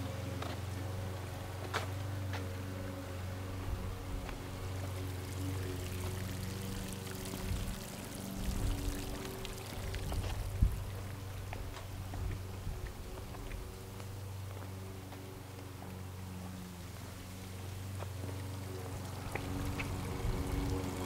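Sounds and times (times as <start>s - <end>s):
water pouring and trickling: 3.4s - 21.0s.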